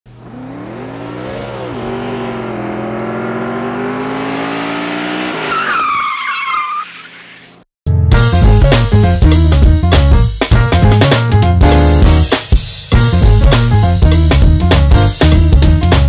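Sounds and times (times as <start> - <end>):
car engine revving: 0.1 - 5.6
tire squeal: 5.3 - 7.6.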